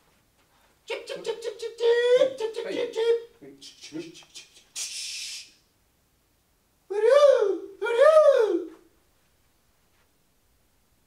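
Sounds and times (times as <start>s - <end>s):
man making short vocal calls: 0.9s - 5.6s, 6.9s - 8.8s
brief hiss: 4.8s - 5.6s.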